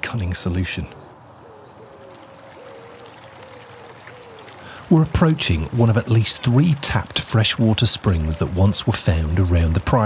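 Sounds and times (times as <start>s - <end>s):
water trickling: 1.3s - 10.0s.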